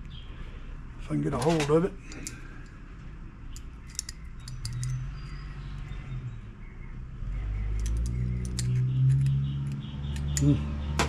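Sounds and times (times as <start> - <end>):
metallic clicks of pliers: 1.5 - 2.8, 3.5 - 5.4, 7.7 - 10.6.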